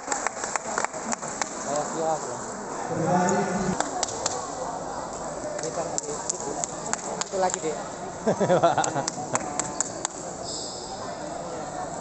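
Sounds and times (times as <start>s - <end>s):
chatter in a busy hall: 0.0s - 12.0s.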